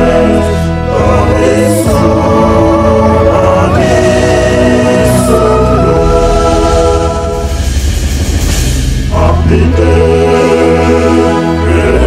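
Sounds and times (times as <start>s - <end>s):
choir singing long held notes: 0.0s - 7.8s, 9.1s - 12.0s
steady bass: 0.0s - 12.0s.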